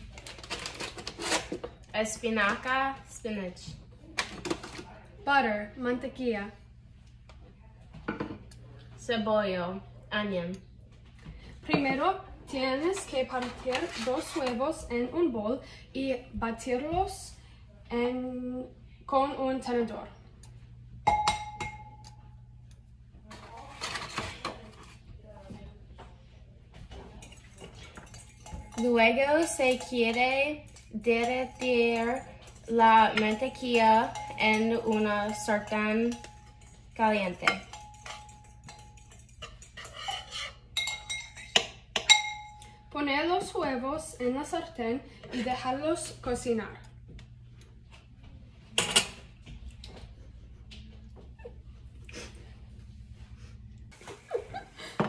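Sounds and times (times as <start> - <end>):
utensils clattering: 0.0 - 2.6, 12.8 - 14.8, 23.3 - 25.0, 27.0 - 42.8
fork beating eggs: 27.2 - 42.2.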